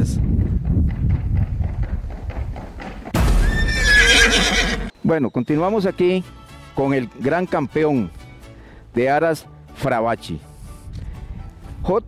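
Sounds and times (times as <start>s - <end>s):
horse hooves tapping on wood: 0.2s - 3.2s
horse whinny: 3.3s - 5.0s.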